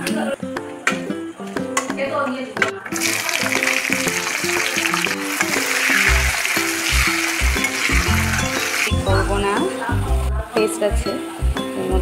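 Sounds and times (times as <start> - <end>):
hot oil sizzling in a pan: 2.9 - 10.2.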